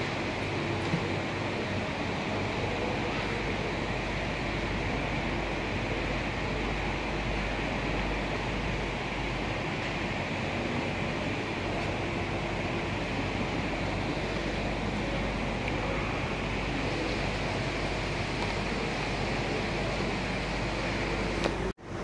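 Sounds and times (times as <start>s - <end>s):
crowded hall rushing noise: 0.0s - 22.0s.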